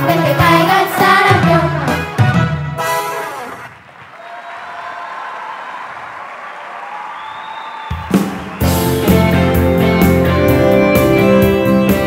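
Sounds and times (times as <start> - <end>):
audience applauding: 3.4 - 9.4
song: 8.5 - 12.0.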